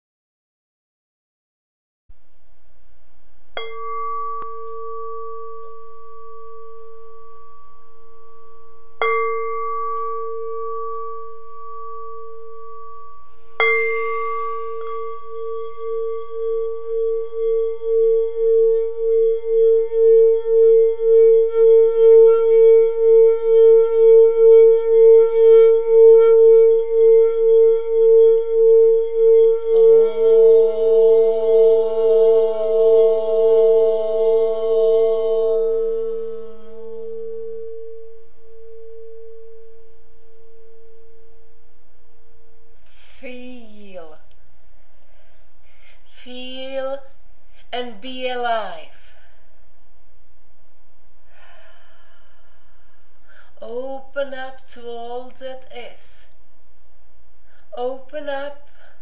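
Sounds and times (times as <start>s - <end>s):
lower tone: 2.1s - 59.0s
singing bowl rim pulsing tone: 3.2s - 59.0s
singing bowl struck: 3.6s - 41.7s.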